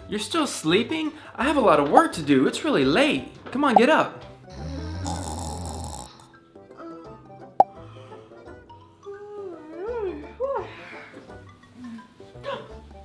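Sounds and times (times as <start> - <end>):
background music: 0.0 - 13.0
person snoring: 4.5 - 6.3.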